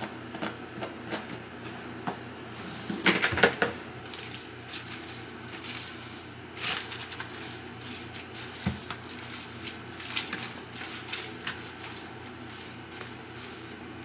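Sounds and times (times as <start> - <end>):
hands scrubbing wet lathered hair: 4.0 - 14.0.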